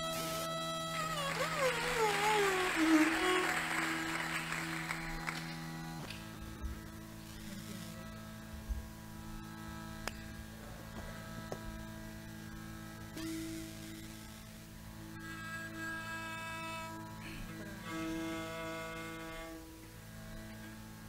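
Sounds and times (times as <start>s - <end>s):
steady drone: 0.0s - 21.0s
violin: 0.0s - 21.0s.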